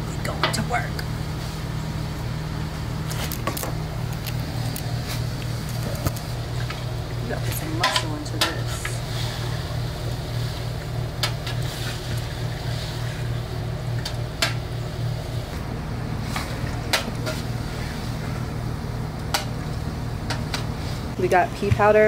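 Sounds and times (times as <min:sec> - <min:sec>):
gas burner rumbling: 0:00.0 - 0:22.0.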